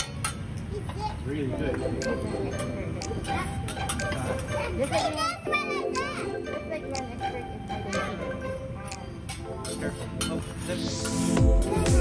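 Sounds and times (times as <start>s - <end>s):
diners chattering: 0.4s - 12.0s
children's voices: 0.6s - 1.3s, 3.2s - 7.1s.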